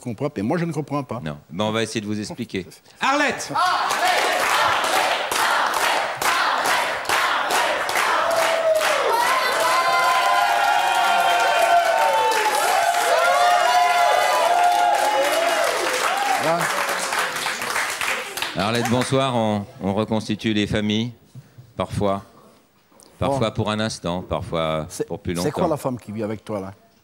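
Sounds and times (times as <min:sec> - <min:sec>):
audience applauding: 0:03.6 - 0:19.2
voices whooping: 0:08.3 - 0:16.6.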